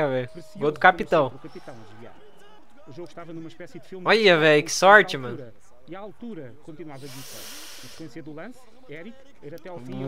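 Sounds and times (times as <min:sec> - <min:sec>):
man giving tv commentary: 0:00.0 - 0:10.0.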